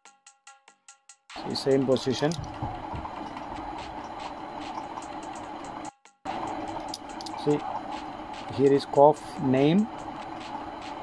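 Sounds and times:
mechanical hum with faint ticks: 1.4 - 11.0.

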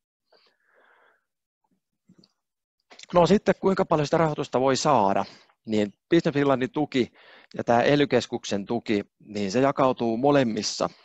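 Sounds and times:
breath into microphone: 0.3 - 1.3, 7.1 - 7.6.

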